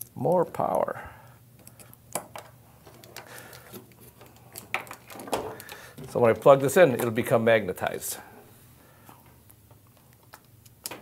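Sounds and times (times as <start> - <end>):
wires and connectors clicking: 1.6 - 7.2, 9.1 - 11.0.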